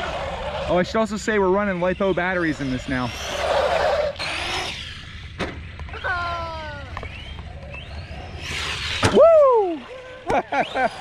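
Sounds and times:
rc truck motor whine: 0.0 - 11.0.

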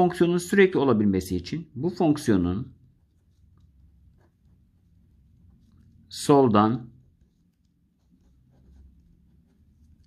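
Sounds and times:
marker scratching on paper: 2.0 - 10.0.

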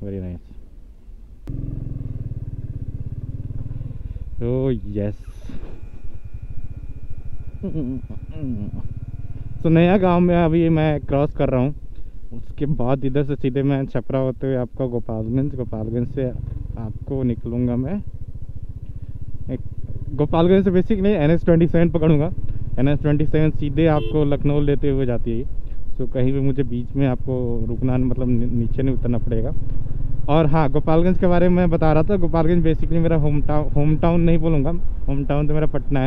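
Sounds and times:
motorcycle engine running: 1.5 - 13.8, 14.4 - 36.0.

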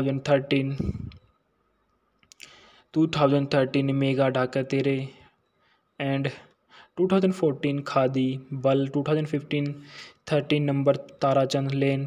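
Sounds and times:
man narrating: 0.0 - 1.2, 2.9 - 5.2, 6.0 - 12.0
soft intake of breath: 0.7 - 1.2, 2.4 - 2.9, 5.2 - 7.0, 9.8 - 10.2
mouth clicks: 2.2 - 2.6.

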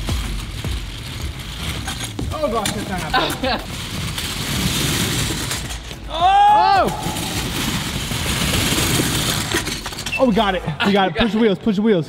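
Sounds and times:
rattling rumble of scooter wheels: 0.0 - 11.2
person yelling: 6.1 - 7.5.

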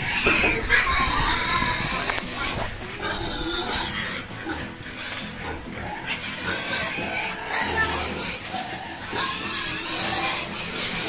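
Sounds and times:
pig calling: 0.0 - 11.0.

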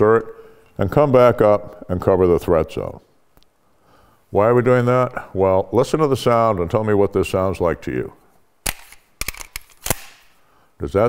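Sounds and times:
pistol magazine clicks: 8.6 - 10.3.

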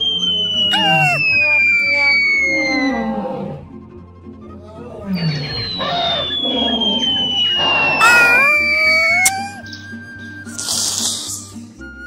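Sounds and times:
cartoon whistle sliding down: 0.0 - 2.6, 5.2 - 9.6
short high squeal: 0.7 - 1.5, 7.6 - 9.6.

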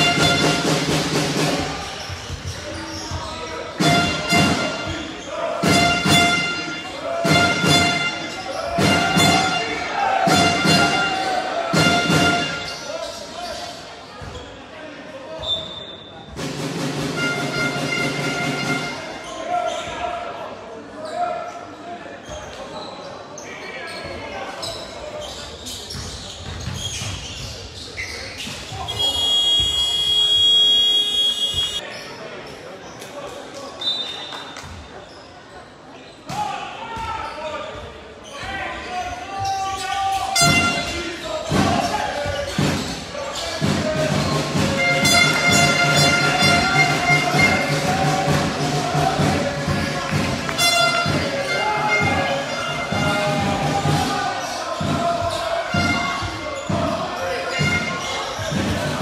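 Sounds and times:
scoreboard buzzer: 29.0 - 31.8.

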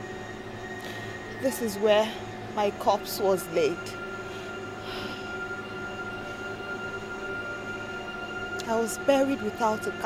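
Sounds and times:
eerie drone music: 0.0 - 10.0
faint breathy swell: 0.1 - 2.6, 3.8 - 8.5.

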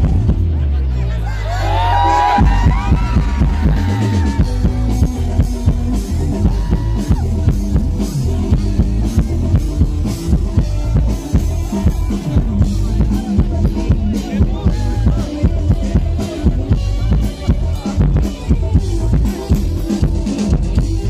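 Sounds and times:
drum kit beat: 0.0 - 0.6, 1.5 - 21.0
live band music: 0.0 - 21.0.

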